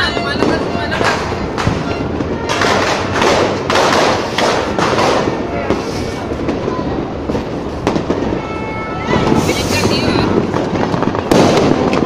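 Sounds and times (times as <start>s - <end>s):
fireworks bangs and crackles: 0.0s - 12.0s.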